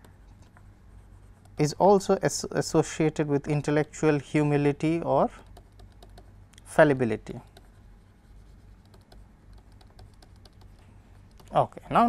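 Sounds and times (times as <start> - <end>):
low steady hum: 0.0 - 12.0
stylus tapping on pen tablet: 5.4 - 6.3, 7.4 - 7.8, 8.7 - 11.6.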